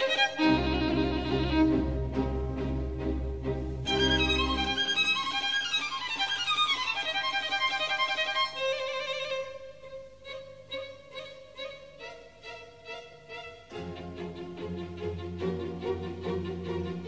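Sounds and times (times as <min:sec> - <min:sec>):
violin background music: 0:00.0 - 0:17.0.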